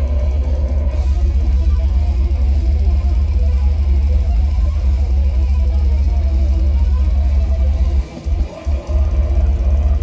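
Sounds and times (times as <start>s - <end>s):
distorted electric guitar riffing: 0.0s - 10.0s
drum kit: 0.0s - 10.0s.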